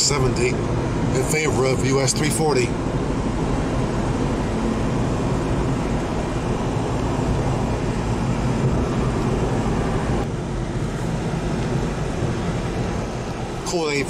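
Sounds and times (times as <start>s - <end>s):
tyre and engine rumble in car: 0.0s - 14.0s.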